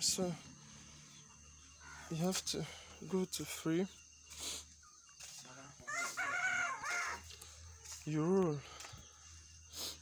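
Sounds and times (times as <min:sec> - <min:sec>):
rooster crowing: 0:05.8 - 0:07.3.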